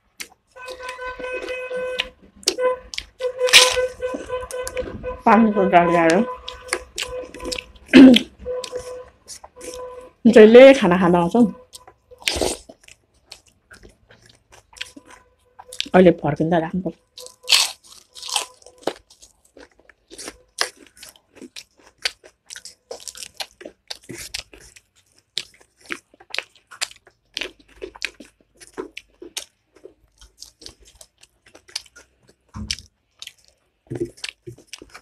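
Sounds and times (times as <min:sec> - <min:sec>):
person chewing and crunching food: 0:00.0 - 0:05.2, 0:05.9 - 0:10.2, 0:11.6 - 0:16.0, 0:16.9 - 0:35.0.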